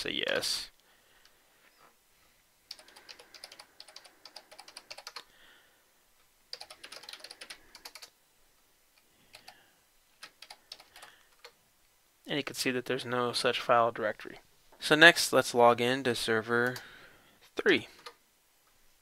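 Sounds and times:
faint keyboard typing: 0:02.7 - 0:05.3, 0:06.5 - 0:08.2, 0:08.9 - 0:11.6, 0:16.6 - 0:16.9, 0:17.9 - 0:18.2.

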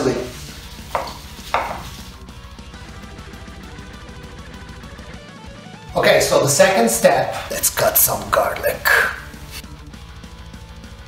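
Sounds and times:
knife chopping on wooden board: 0:00.8 - 0:02.1.

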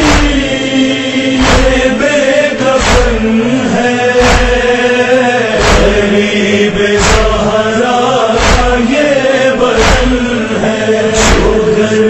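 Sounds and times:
sharp drum beats: 0:00.0 - 0:00.7, 0:01.4 - 0:02.0, 0:02.8 - 0:03.4, 0:04.2 - 0:04.9, 0:05.5 - 0:06.3, 0:06.9 - 0:07.6, 0:08.4 - 0:09.0, 0:09.7 - 0:10.4, 0:11.2 - 0:11.8
held vocal drone lament chant: 0:00.0 - 0:12.0.

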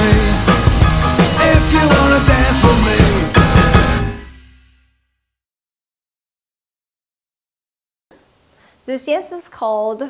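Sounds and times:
faint rock song: 0:00.0 - 0:04.3.

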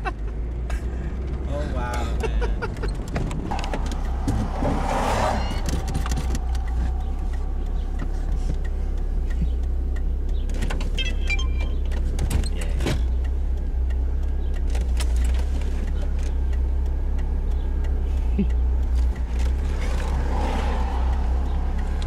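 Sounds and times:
car engine idling: 0:00.0 - 0:22.0
faint clicks: 0:05.2 - 0:11.0, 0:11.6 - 0:22.0.

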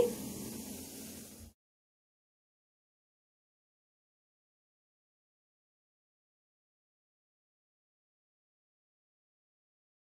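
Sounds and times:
faint hiss: 0:00.0 - 0:01.6.

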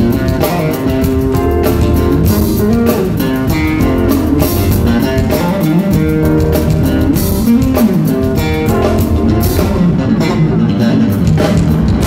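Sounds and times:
drum kit: 0:00.0 - 0:12.0
electric bass melody: 0:00.0 - 0:12.0
keyboards: 0:00.0 - 0:12.0.

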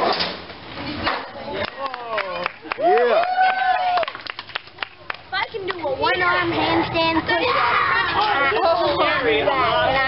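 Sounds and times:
children chattering: 0:04.8 - 0:10.0.

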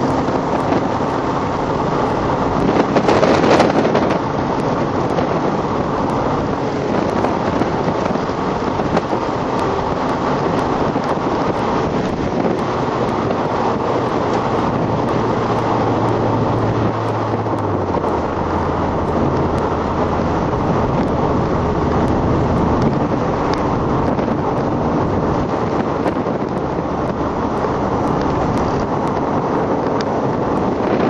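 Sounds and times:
car interior road noise: 0:00.0 - 0:31.0.

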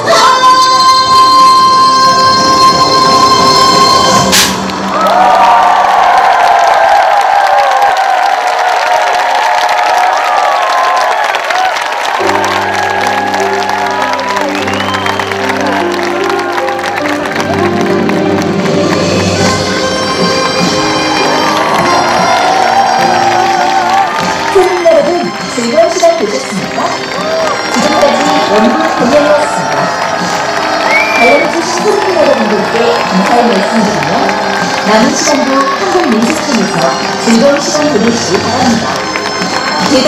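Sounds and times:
audience cheering and applauding: 0:02.4 - 0:40.0
sharp drum hit: 0:04.3 - 0:04.7
folk performance music: 0:12.3 - 0:40.0.

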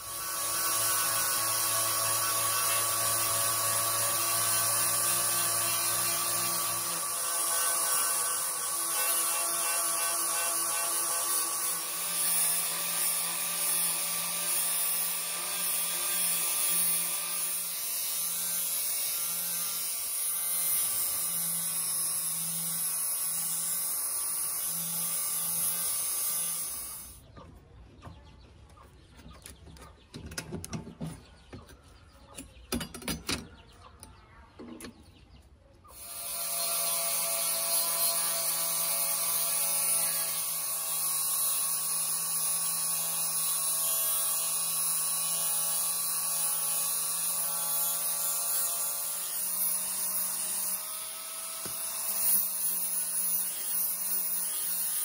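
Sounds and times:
wire brush grinder on steel: 0:00.0 - 0:27.2, 0:35.9 - 0:55.0.

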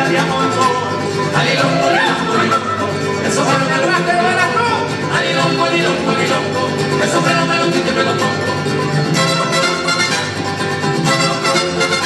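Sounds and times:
strummed guitars: 0:00.0 - 0:12.0.

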